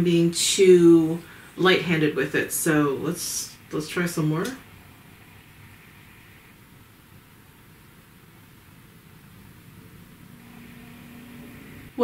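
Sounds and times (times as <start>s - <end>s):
faint low hum: 0.0s - 12.0s
steady faint hiss: 0.0s - 12.0s.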